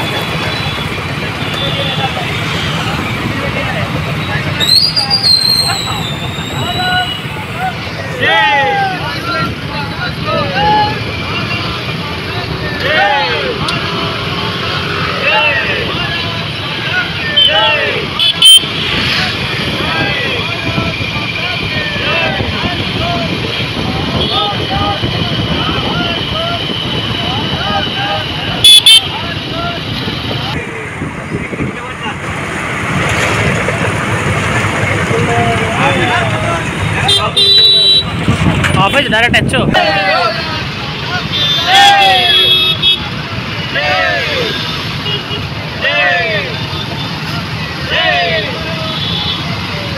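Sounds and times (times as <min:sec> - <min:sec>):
people calling and shouting: 0:00.0 - 0:49.9
horns honking: 0:11.2 - 0:30.4, 0:36.9 - 0:49.9.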